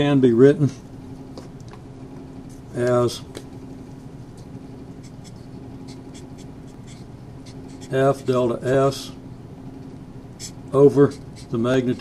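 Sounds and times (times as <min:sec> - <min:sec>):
steady low hum: 0:00.0 - 0:12.0
marker pen writing on paper: 0:05.0 - 0:08.2, 0:10.4 - 0:11.6.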